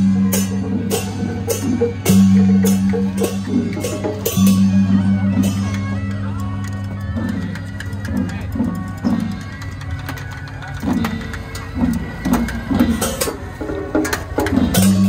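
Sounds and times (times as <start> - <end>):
brass cymbals struck: 0.0 - 5.8, 14.5 - 15.0.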